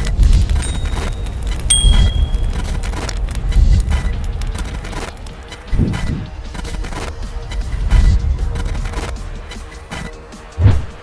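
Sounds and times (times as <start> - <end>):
deep rumbling bass: 0.0 - 9.4
high ringing tone: 0.6 - 2.7.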